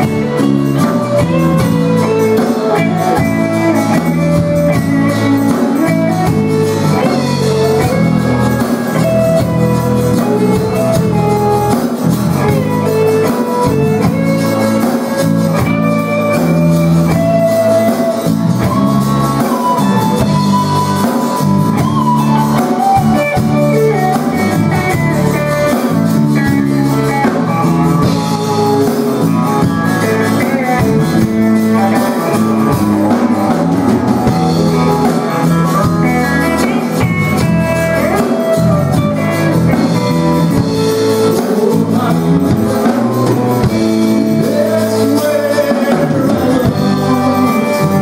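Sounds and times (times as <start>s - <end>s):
bass line: 0.0s - 48.0s
electric guitar lead: 0.0s - 48.0s
gospel band playing: 0.0s - 48.0s.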